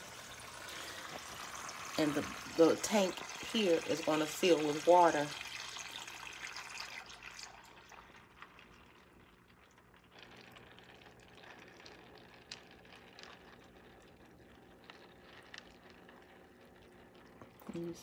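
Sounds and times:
low steady hum: 0:00.0 - 0:18.0
water dripping: 0:00.0 - 0:18.0
water trickling: 0:00.0 - 0:18.0.

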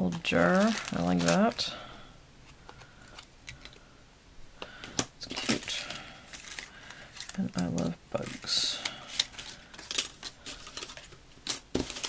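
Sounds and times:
paper rustle: 0:00.1 - 0:01.7, 0:05.3 - 0:12.0.

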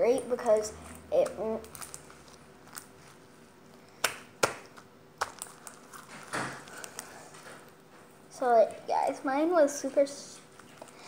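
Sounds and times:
slime squelching: 0:00.3 - 0:08.6
slime clicking and popping: 0:03.9 - 0:07.0.

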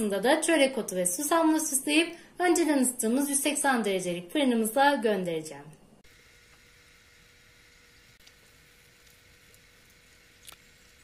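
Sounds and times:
steady low hum: 0:05.6 - 0:11.0.

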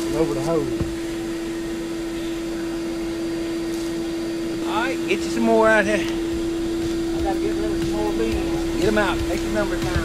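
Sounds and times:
vacuum motor humming: 0:00.0 - 0:10.0.

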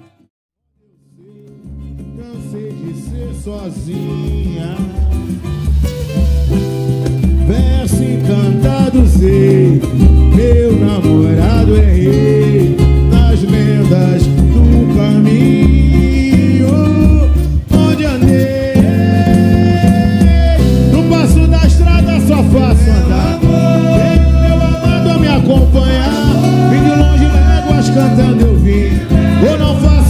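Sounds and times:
live samba music: 0:00.9 - 0:30.0
percussion: 0:01.2 - 0:30.0
bass beat: 0:01.3 - 0:30.0
voices singing: 0:07.5 - 0:30.0.

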